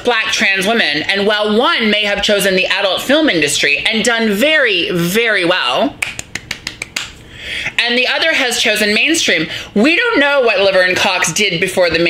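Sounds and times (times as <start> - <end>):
rapid hand claps: 6.0 - 7.2.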